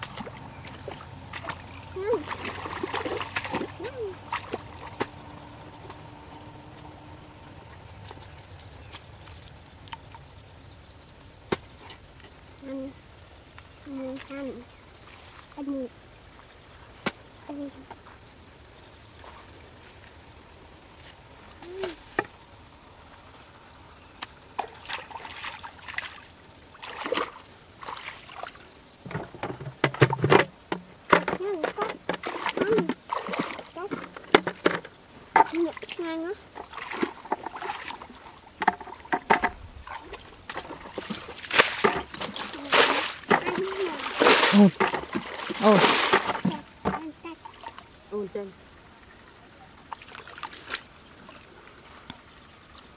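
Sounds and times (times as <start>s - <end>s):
hands splashing in muddy water: 0.0s - 5.2s, 26.8s - 28.6s, 31.8s - 33.8s, 35.5s - 38.3s, 39.9s - 46.7s.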